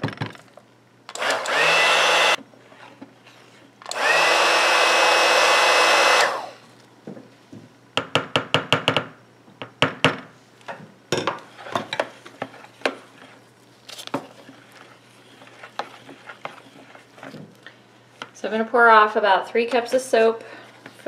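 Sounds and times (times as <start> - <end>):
stick blender whining: 1.1 - 2.4, 3.9 - 6.6.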